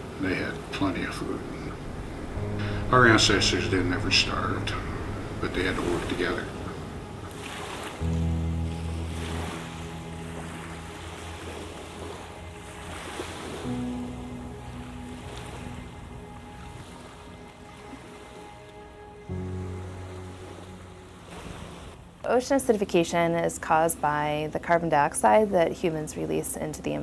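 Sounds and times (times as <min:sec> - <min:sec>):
waves washing onto shore: 0:00.0 - 0:22.1
music of long held chords: 0:00.0 - 0:22.3.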